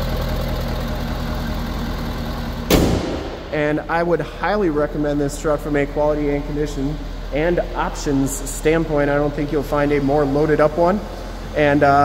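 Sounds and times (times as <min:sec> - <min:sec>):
diesel engine idling: 0:00.0 - 0:12.0
hood slamming shut: 0:02.6 - 0:03.8.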